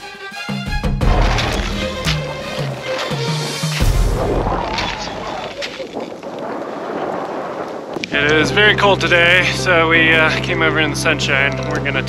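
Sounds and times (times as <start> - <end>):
boots crunching in hard snow: 1.0 - 8.3
wind buffeting microphone: 1.1 - 10.5.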